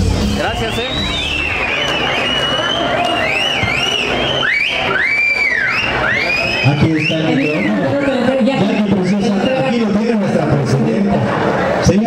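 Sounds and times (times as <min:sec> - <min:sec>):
audience whistling: 0:00.0 - 0:09.1
crowd din: 0:00.0 - 0:12.0.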